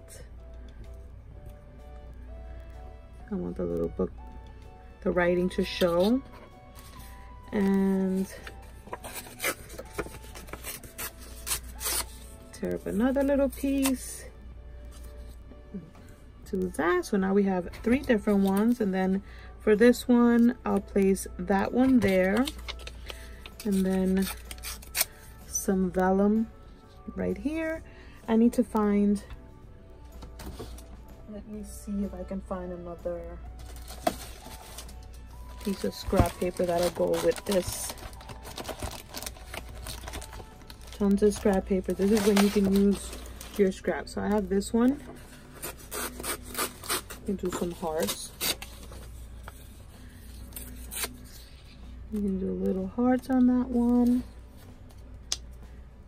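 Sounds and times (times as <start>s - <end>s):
paper rustling and rubbing: 7.9s - 12.9s, 22.0s - 25.1s, 33.6s - 43.6s.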